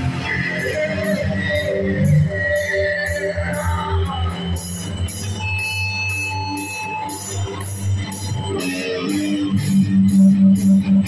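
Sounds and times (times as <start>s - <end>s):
electric guitar sustained notes: 0.0s - 11.0s.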